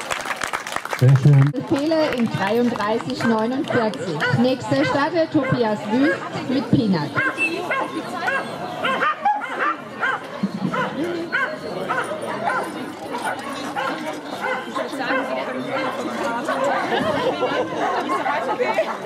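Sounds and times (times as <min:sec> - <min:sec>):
crowd chatter: 0:01.0 - 0:19.0
dog barking: 0:03.2 - 0:06.3, 0:07.2 - 0:17.0.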